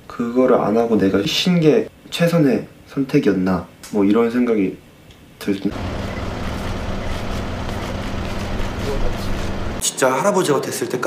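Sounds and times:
road traffic rumble: 5.7 - 9.8.

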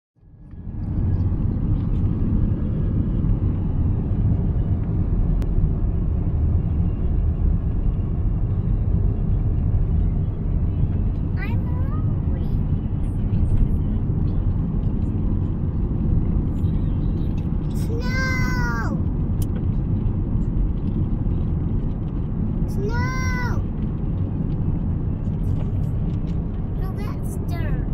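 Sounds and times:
road and engine rumble in car: 0.2 - 27.9.

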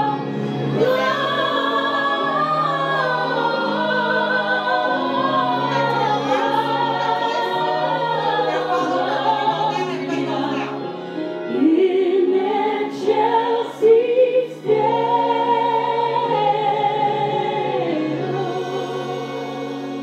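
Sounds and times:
woman singing gospel song: 0.0 - 3.8, 4.4 - 10.8
held accompaniment chords: 0.0 - 20.0.

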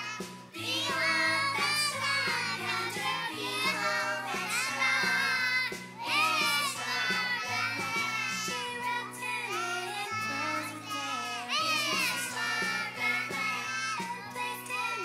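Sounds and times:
young children singing together: 0.0 - 15.0.

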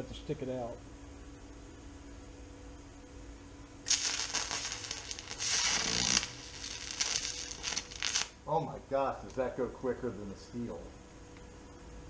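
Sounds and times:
welding arc crackling and hissing: 3.8 - 9.6.

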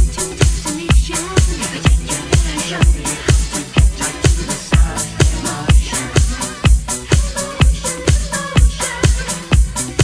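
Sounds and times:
electro disco dance music: 0.0 - 10.0.

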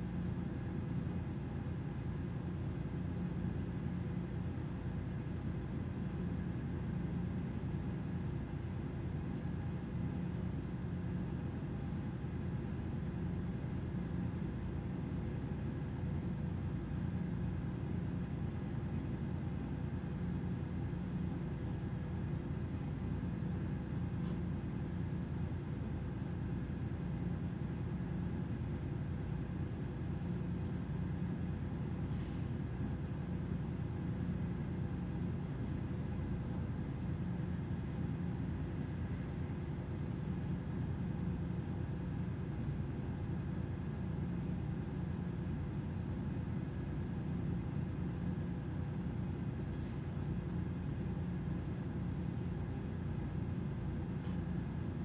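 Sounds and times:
low machinery hum: 0.0 - 55.0.

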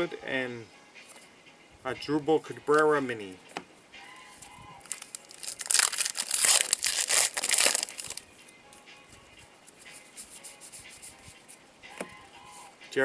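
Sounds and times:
cards being handled: 4.8 - 8.2, 9.1 - 12.2
plastic wrapper crinkling torn open: 4.8 - 8.2.

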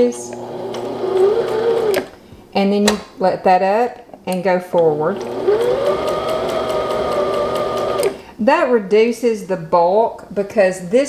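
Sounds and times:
sewing machine running: 0.1 - 2.1, 5.1 - 8.2.

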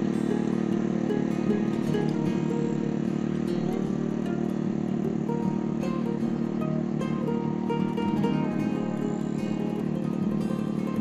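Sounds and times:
guitar music: 0.0 - 11.0
tiller engine churning soil: 0.0 - 11.0.

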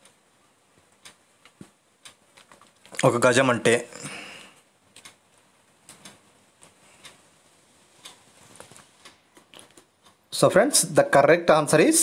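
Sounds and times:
faint ticking clicks: 0.0 - 3.2, 4.0 - 10.9.

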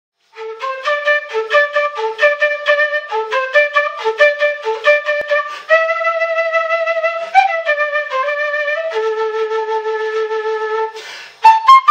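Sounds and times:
end-blown flute melody: 0.3 - 11.9.

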